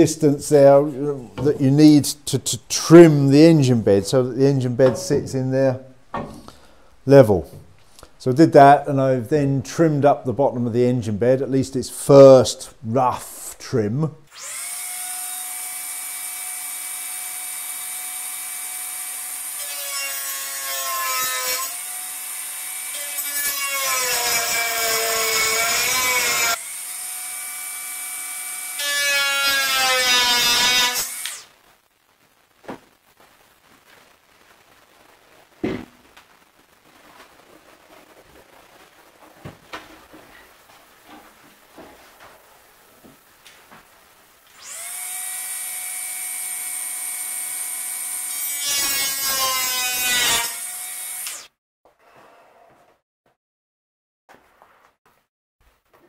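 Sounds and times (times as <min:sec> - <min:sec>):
power tool grinding wood: 0:22.9 - 0:31.4, 0:44.5 - 0:51.4
sharp thump: 0:35.6 - 0:36.0.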